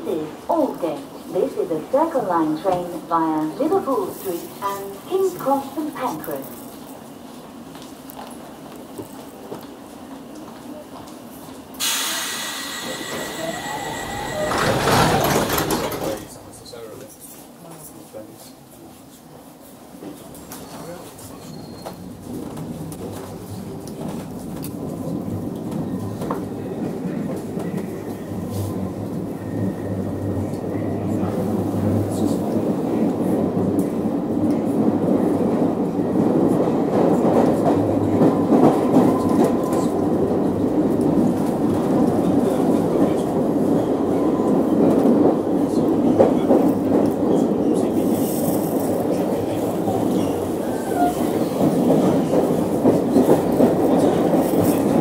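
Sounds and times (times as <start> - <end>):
subway train running in tunnel: 0.0 - 55.0.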